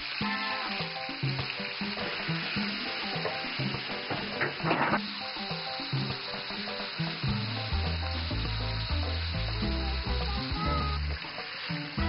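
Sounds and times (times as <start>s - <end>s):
food sizzling in a pan: 0.0s - 12.0s
background music with bass: 7.1s - 12.0s.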